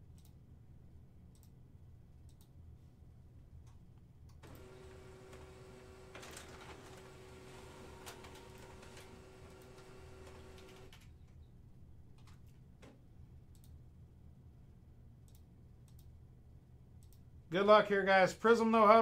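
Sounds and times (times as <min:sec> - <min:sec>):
mouse clicks: 0:01.3 - 0:01.6, 0:02.2 - 0:02.6, 0:13.5 - 0:13.8, 0:15.2 - 0:16.2
printer printing: 0:04.4 - 0:11.0.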